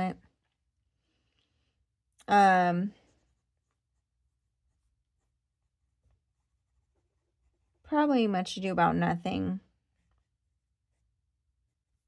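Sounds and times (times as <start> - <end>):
woman speaking: 0.0 - 0.2, 2.2 - 3.0, 7.9 - 9.7
fountain pen scratching on paper: 3.2 - 7.8.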